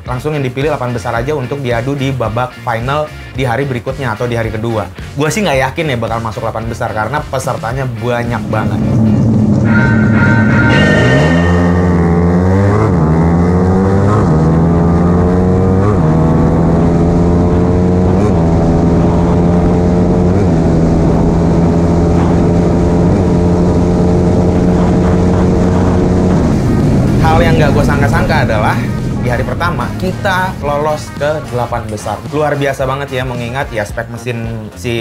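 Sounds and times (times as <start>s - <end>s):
motorcycle engine accelerating hard: 8.3s - 32.0s.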